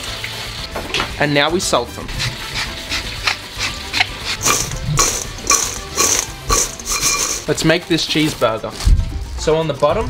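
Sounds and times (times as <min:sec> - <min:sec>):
salt shaker rattling: 0:03.2 - 0:07.6.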